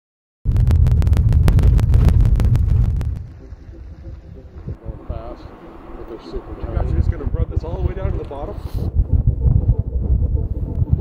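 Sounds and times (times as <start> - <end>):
wind on microphone: 0.5 - 11.0
longboard wheels rolling on pavement: 2.7 - 8.6.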